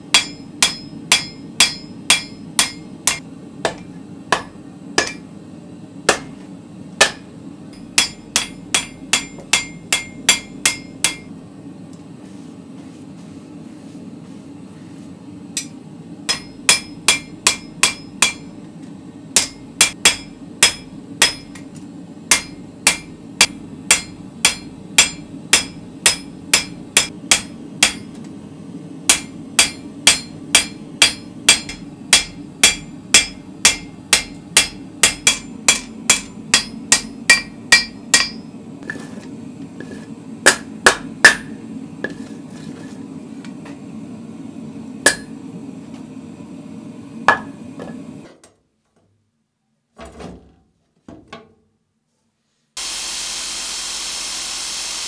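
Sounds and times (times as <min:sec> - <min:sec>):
hammer ringing on anvil: 0:00.1 - 0:05.2, 0:07.0 - 0:11.3, 0:16.3 - 0:18.5, 0:19.4 - 0:21.6, 0:22.3 - 0:28.1, 0:29.1 - 0:38.5, 0:40.5 - 0:41.6, 0:45.1 - 0:45.4.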